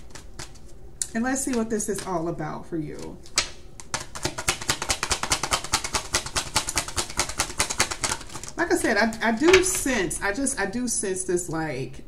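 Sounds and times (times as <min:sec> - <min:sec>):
cards being shuffled: 0:00.0 - 0:00.8, 0:03.0 - 0:09.8.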